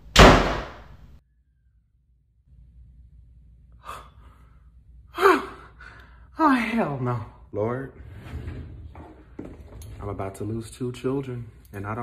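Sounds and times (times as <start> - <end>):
person gasping: 3.8 - 6.3.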